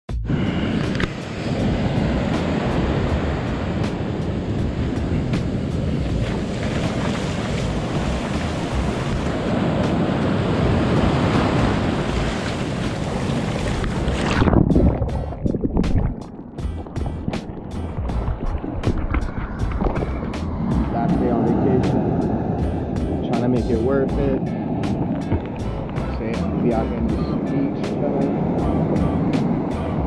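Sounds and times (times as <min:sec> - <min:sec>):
ocean surf washing up: 0:00.3 - 0:30.0
wind buffeting microphone: 0:00.3 - 0:30.0
water washing over camera: 0:04.9 - 0:20.8.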